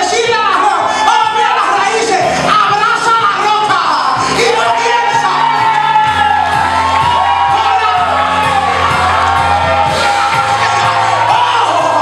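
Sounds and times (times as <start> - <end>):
congregation whooping and cheering: 0.0 - 12.0
worship music with beat and bass: 0.0 - 12.0.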